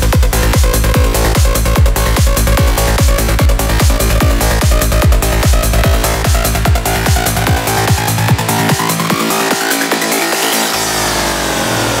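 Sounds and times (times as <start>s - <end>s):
buzzing synth sweeping downward: 0.0s - 12.0s
deep bass drone: 0.0s - 12.0s.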